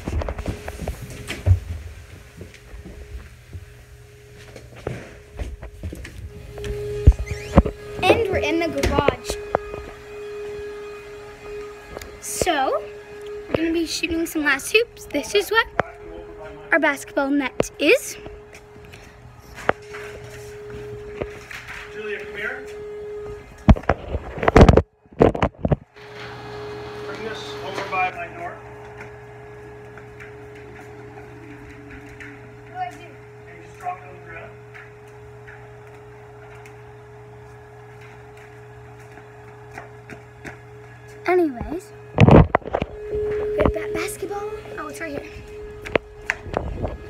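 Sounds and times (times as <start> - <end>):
steady hum: 0.0 - 47.0.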